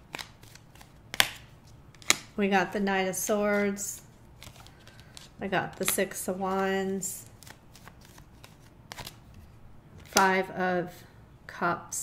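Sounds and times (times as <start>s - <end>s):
cards sliding: 0.0s - 2.3s, 4.4s - 6.0s, 7.2s - 10.3s.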